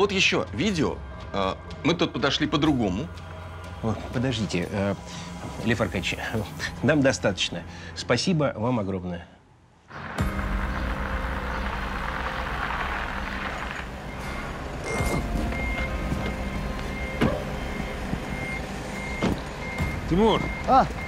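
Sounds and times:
truck engine idling: 10.2 - 21.0
truck reversing alarm beeping: 11.3 - 21.0.

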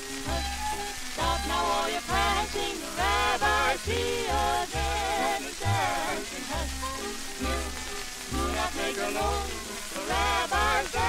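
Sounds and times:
record surface hiss and crackle: 0.0 - 11.0
vocal harmony folk song: 0.0 - 11.0.

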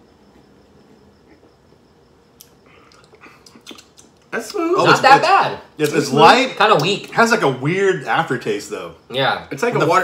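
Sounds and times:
faint drinking sounds: 2.4 - 4.6.

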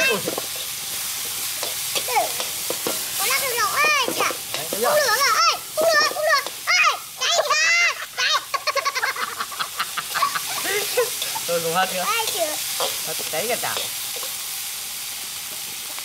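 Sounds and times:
spatula scraping a wok: 0.0 - 6.7, 9.9 - 14.7
food sizzling in a wok: 0.0 - 16.0.

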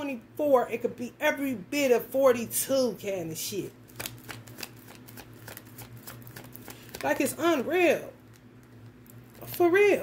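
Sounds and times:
cards being shuffled: 3.8 - 9.7.

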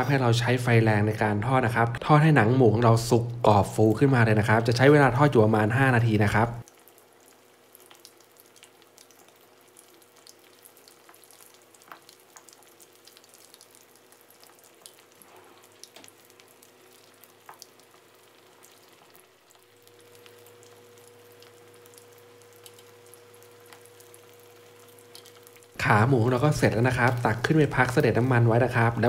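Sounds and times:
low steady hum: 0.0 - 29.0
meat deep-frying with crackles: 0.0 - 29.0.

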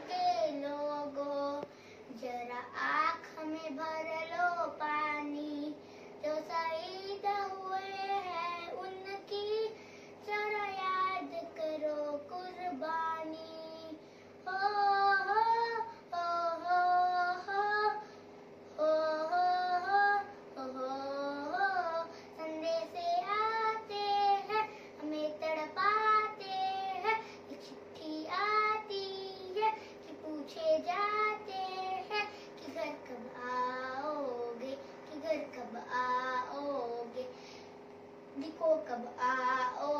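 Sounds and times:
girl singing unaccompanied: 0.0 - 18.0, 18.8 - 37.4, 38.4 - 39.9.

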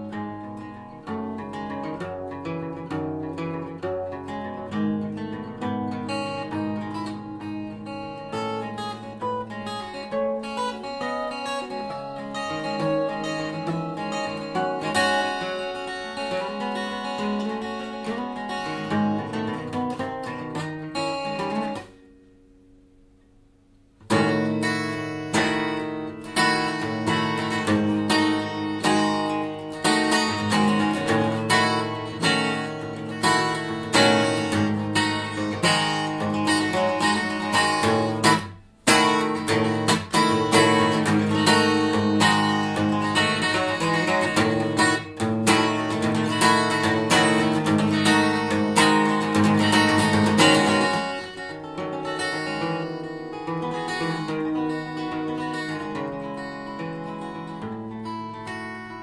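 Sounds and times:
acoustic guitar played fast: 0.0 - 59.0.

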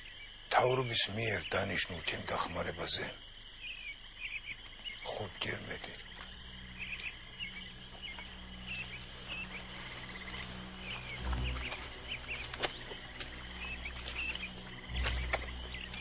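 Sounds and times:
small birds chirping: 0.0 - 16.0
steady low hum: 1.2 - 16.0.

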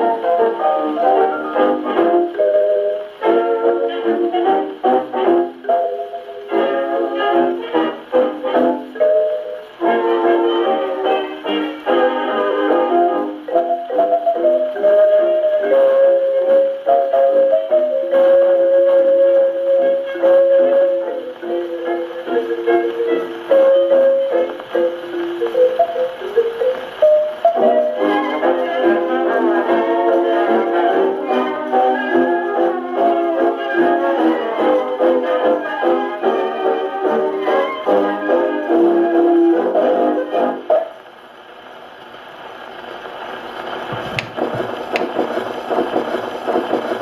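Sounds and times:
dance band on old gramophone record: 0.0 - 47.0
rhythmic mechanical rattle: 43.7 - 47.0.

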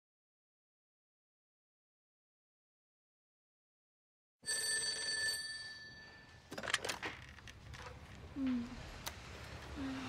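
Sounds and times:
telephone bell ringing: 4.4 - 6.5.

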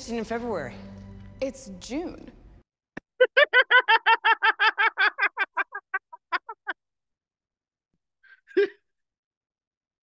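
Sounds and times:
person laughing high-pitched: 3.1 - 6.8.

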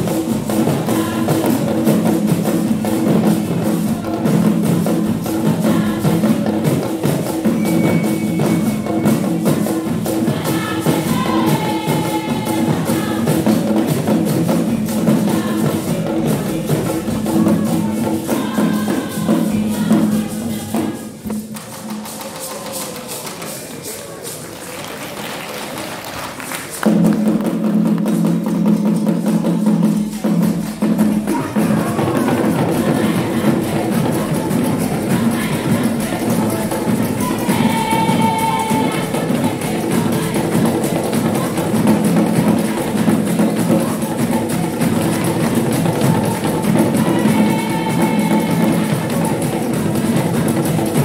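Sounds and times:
drumming ensemble: 0.0 - 51.0.

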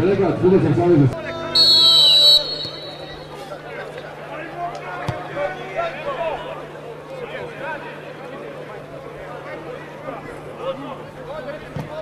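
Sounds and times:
stadium background voices: 0.0 - 12.0
referee's whistle blast: 1.4 - 3.3.

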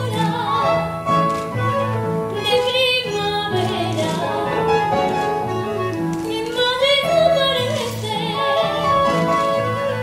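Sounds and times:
woman singing: 0.0 - 1.0, 2.3 - 5.2, 6.2 - 10.0
instrumental accompaniment: 0.0 - 10.0.

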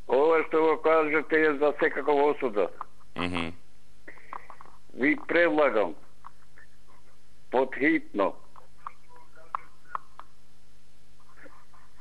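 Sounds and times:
faint murmur of voice: 3.2 - 3.6.

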